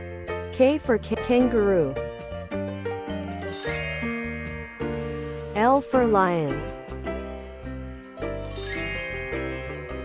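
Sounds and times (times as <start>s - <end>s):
background music with held notes: 0.0s - 10.0s
tinkling chime sweeping upward: 3.4s - 5.4s, 8.4s - 10.0s.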